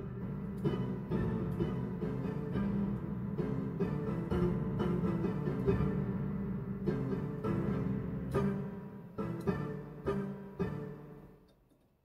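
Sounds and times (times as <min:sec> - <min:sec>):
digital piano playing: 0:00.0 - 0:11.3.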